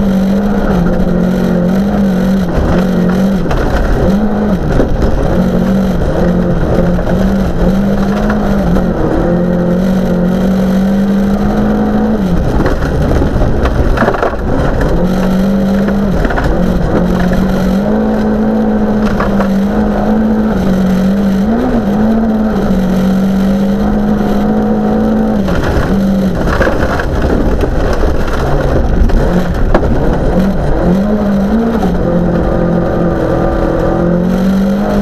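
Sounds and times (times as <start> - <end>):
car engine running hard: 0.0 - 35.0
tyres on gravel: 0.1 - 33.9.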